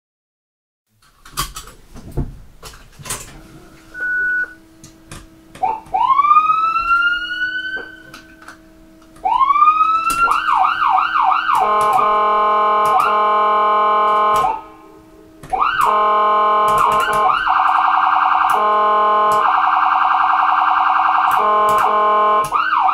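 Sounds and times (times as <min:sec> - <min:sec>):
faint steady hum: 0:01.0 - 0:22.9
ambulance siren: 0:03.4 - 0:04.8, 0:05.6 - 0:22.9
short beep: 0:03.9 - 0:04.6.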